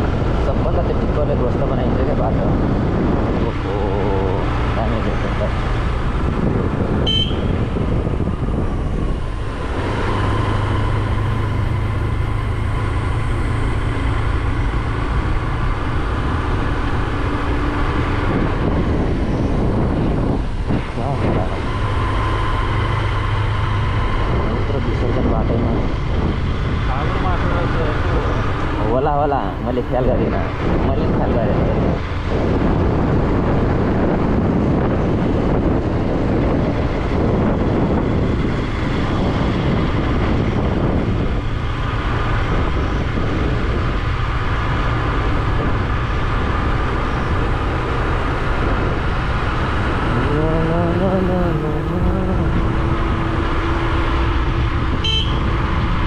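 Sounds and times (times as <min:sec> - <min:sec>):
wind and road noise: 0:00.0 - 0:56.0
motorcycle engine running: 0:32.0 - 0:56.0.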